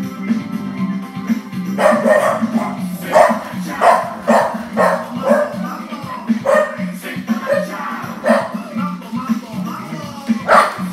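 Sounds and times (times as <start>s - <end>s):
upbeat music: 0.0s - 10.9s
dog barking: 1.8s - 8.8s, 10.4s - 10.9s.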